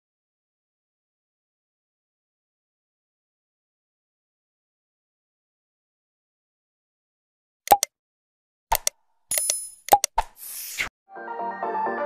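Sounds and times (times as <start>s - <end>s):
mouse click sound effect: 7.7s - 7.9s, 8.7s - 10.9s.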